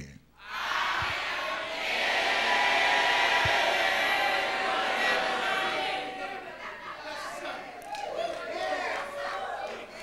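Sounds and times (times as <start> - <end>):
congregation applauding: 2.2 - 10.0.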